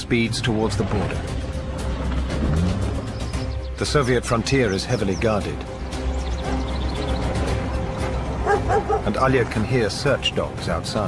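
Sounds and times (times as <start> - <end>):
low music drone: 0.0 - 11.0
dogs barking: 8.3 - 9.3.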